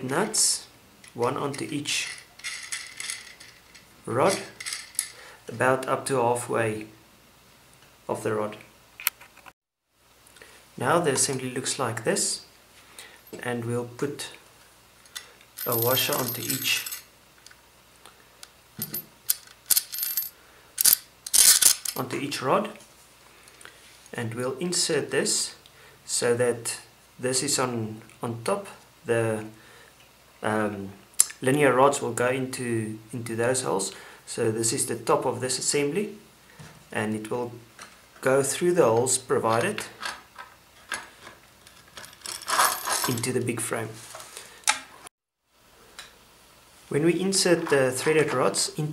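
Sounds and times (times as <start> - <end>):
metal washers clinking: 2.0 - 5.2, 15.1 - 17.1, 18.8 - 22.0, 41.6 - 43.3.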